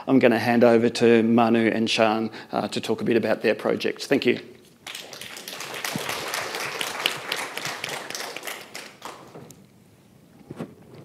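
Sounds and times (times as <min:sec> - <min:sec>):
audience applauding: 0:04.8 - 0:09.5.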